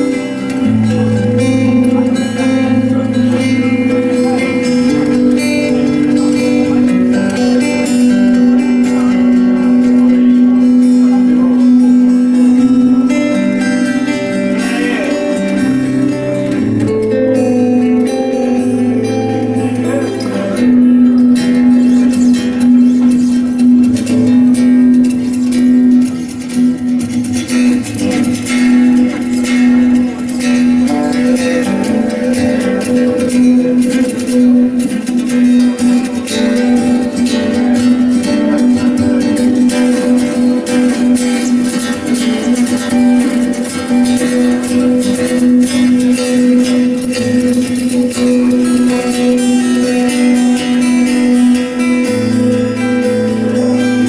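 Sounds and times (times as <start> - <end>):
acoustic guitar plucking and strumming: 0.0 - 54.0.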